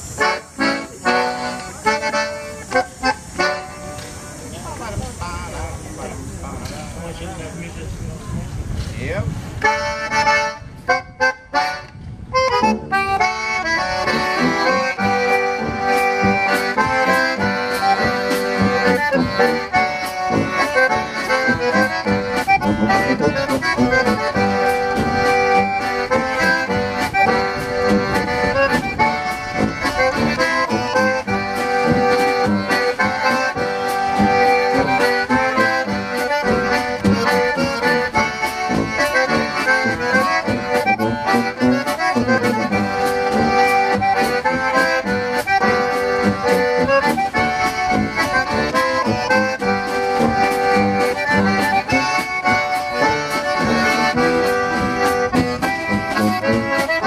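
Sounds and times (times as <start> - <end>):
concertina playing a tune: 0.0 - 4.5, 9.6 - 57.0
tuba: 12.4 - 57.0
drum kit steady beat: 13.2 - 57.0.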